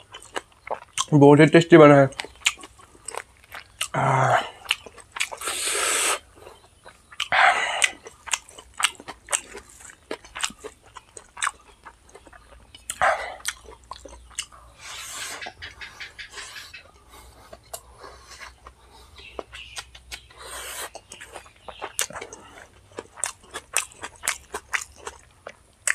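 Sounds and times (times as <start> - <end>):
close chewing with wet smacking: 0.0 - 25.9
mouth clicks: 11.4 - 25.2.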